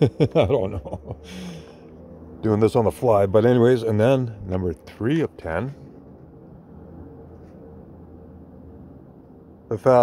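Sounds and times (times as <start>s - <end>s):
faint low outdoor hum: 0.0s - 10.0s.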